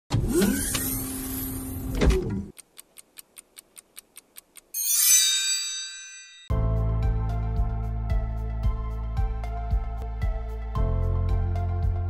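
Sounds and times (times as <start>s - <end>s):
sharp clicks: 2.5s - 4.8s.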